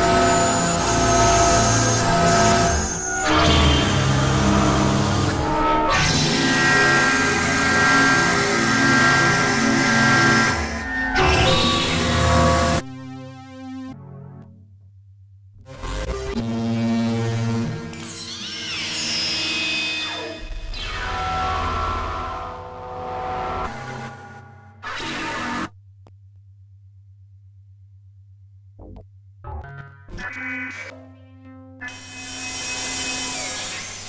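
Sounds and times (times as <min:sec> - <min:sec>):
experimental synthesizer music: 0:07.6 - 0:14.9, 0:28.8 - 0:34.0.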